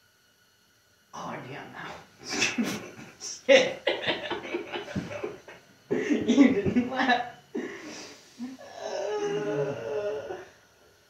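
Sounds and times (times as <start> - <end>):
man humming: 7.6 - 10.6.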